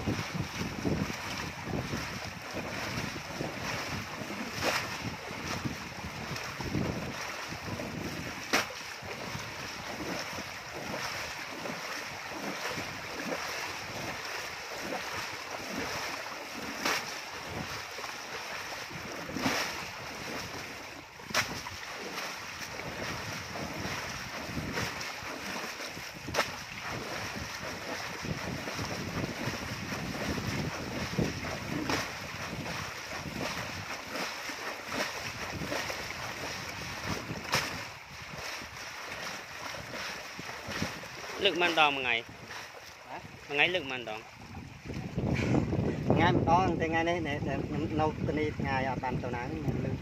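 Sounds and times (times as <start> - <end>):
water splash: 0.0 - 45.8
water sloshing through basket: 0.0 - 46.8
water rushing over rock: 0.0 - 50.0.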